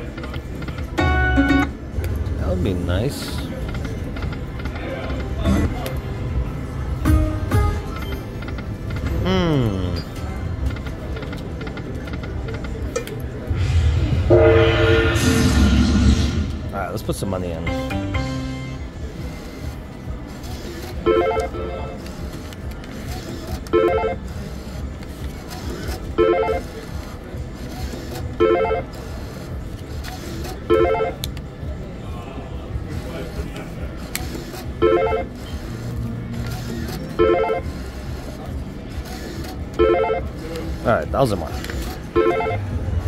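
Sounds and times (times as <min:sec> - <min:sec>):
slot machine electronic chime: 0:01.0 - 0:01.8, 0:30.7 - 0:31.2, 0:42.1 - 0:42.7.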